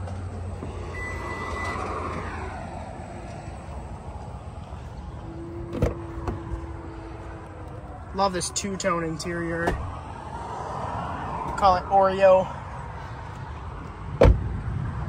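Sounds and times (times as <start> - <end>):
electric motor whirring: 0.6 - 7.8
short warning beep: 0.9 - 1.9.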